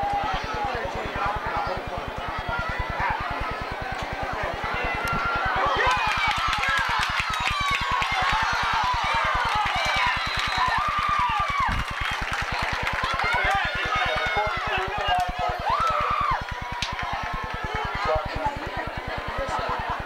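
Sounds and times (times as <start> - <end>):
spectators shouting: 0.0 - 20.0
rapid low buzzing pulse: 0.1 - 20.0.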